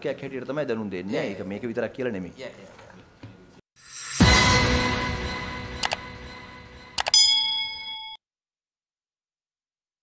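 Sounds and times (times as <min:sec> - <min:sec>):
bright bell-like ding: 0:07.0 - 0:08.2.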